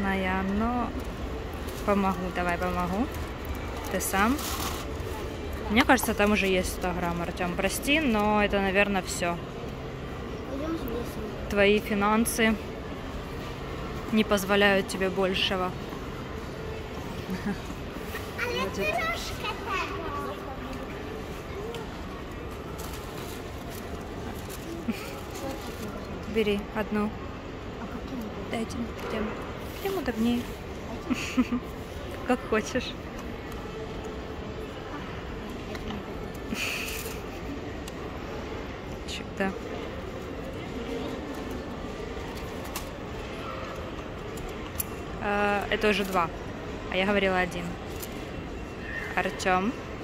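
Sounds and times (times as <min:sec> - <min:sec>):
shop background hum: 0:00.0 - 0:50.0.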